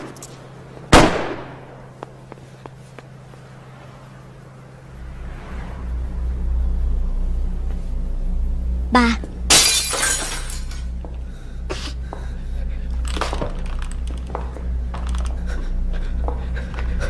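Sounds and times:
dark film score drone: 0:00.0 - 0:17.0
glass shattering crash: 0:09.5 - 0:10.9.

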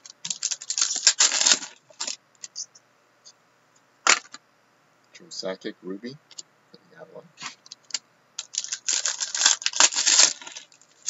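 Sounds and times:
trading cards rustling: 0:00.2 - 0:02.6, 0:07.4 - 0:11.0.

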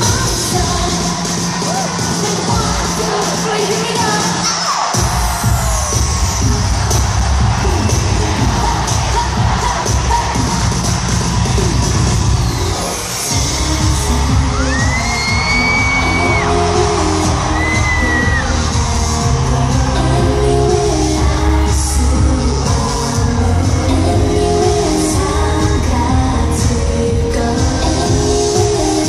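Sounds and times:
crowd cheering: 0:00.0 - 0:29.0
loud amplified pop music: 0:00.0 - 0:29.0
person singing: 0:12.8 - 0:29.0.

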